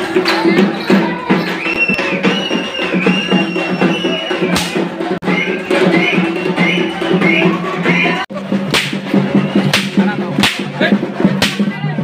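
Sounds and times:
fast drumming: 0:00.0 - 0:12.0.

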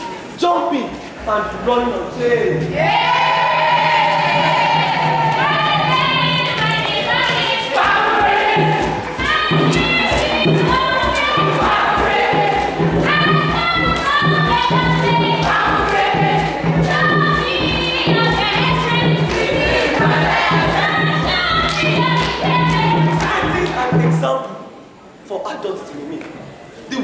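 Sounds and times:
group of voices singing: 0:02.8 - 0:24.3
thuds of dancing feet: 0:05.8 - 0:23.6.

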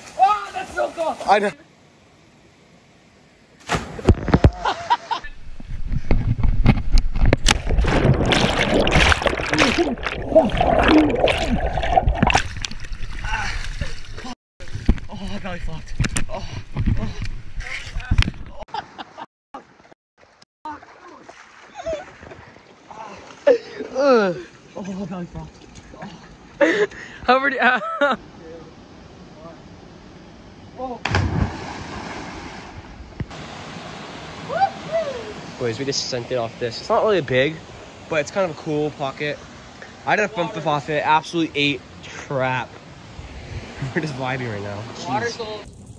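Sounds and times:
rushing water: 0:00.0 - 0:01.8, 0:07.1 - 0:15.7, 0:31.0 - 0:45.9
water splashing and churning: 0:07.1 - 0:16.7, 0:19.6 - 0:24.8, 0:31.0 - 0:36.2
person splashing into water: 0:07.4 - 0:14.3, 0:31.0 - 0:32.8.

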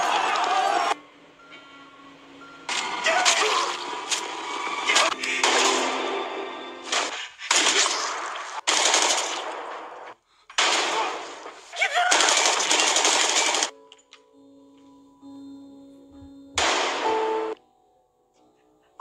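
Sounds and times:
held music tones: 0:00.0 - 0:07.0, 0:13.7 - 0:19.0
loud gunshots: 0:05.0 - 0:06.2, 0:06.8 - 0:13.7.

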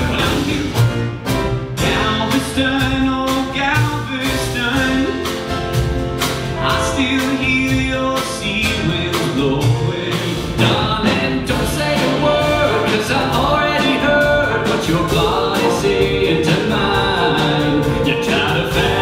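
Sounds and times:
live country band with drums: 0:00.0 - 0:19.0
person singing: 0:01.8 - 0:05.5, 0:06.6 - 0:19.0.

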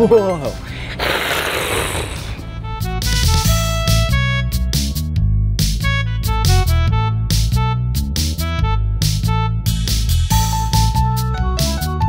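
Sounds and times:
person roaring like a big cat: 0:01.0 - 0:02.4.

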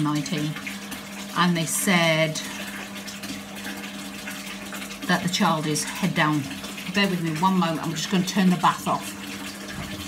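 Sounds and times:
extractor fan hum: 0:00.0 - 0:10.0
tap running into bathtub: 0:00.0 - 0:10.0.

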